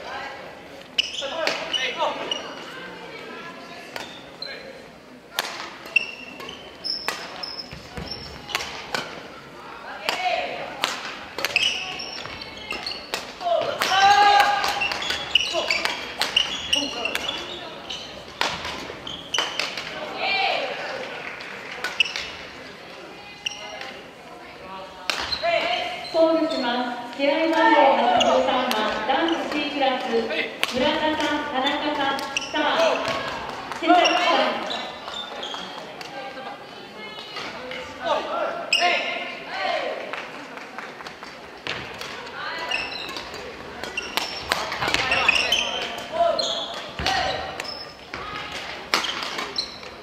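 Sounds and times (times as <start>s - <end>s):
rackets hitting shuttlecock: 5.3s - 9.2s, 10.0s - 17.5s, 18.2s - 20.0s, 25.0s - 25.7s, 27.5s - 31.5s, 41.6s - 50.0s
short high squeaks: 5.9s - 8.5s
players calling out: 5.9s - 22.4s.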